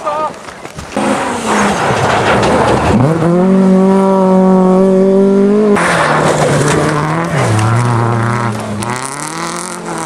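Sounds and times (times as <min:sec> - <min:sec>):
tyre and road noise: 0:00.0 - 0:10.0
rally car engine approaching: 0:00.9 - 0:10.0.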